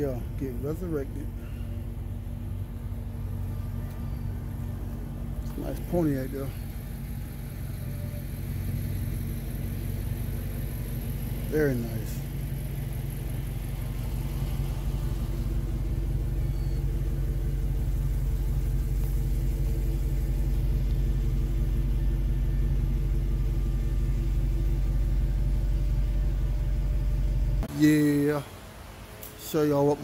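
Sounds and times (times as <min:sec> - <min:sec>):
car engine idling: 0:00.0 - 0:30.0.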